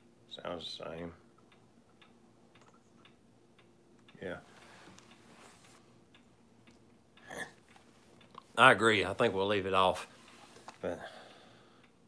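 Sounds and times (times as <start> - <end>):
wall clock ticking: 0.0 - 12.0.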